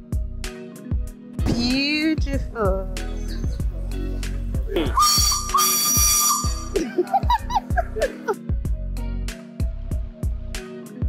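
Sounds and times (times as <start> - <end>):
background music: 0.0 - 11.0
steam locomotive whistle: 5.0 - 6.8.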